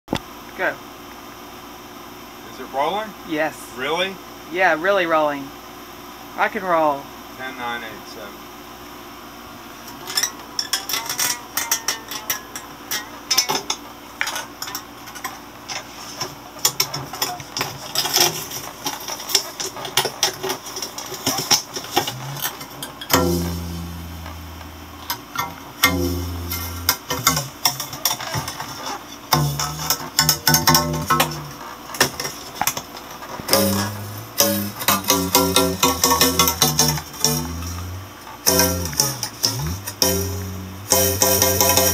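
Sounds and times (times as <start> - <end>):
electric strings plucked and strummed: 20.7 - 32.3, 33.2 - 41.9
low buzzing tones: 21.9 - 28.0, 29.3 - 32.0, 33.5 - 41.9.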